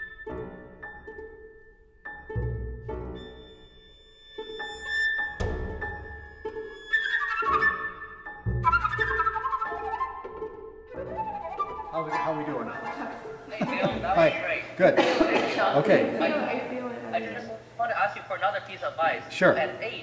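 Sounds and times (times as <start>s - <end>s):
flute: 6.4s - 13.3s.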